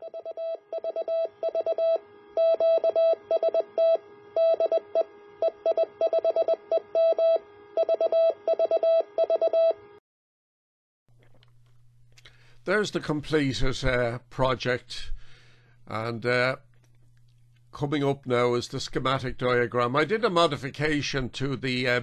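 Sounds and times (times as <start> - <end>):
morse code beeping tone: 0.0 - 9.8.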